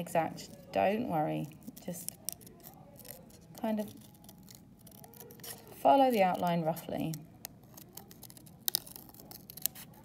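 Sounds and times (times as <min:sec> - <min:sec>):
scissors cutting paper: 0:00.0 - 0:10.0.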